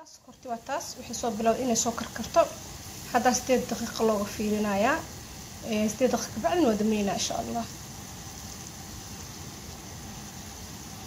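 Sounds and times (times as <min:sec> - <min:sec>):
sugar syrup hissing in a pot: 0:00.0 - 0:11.0.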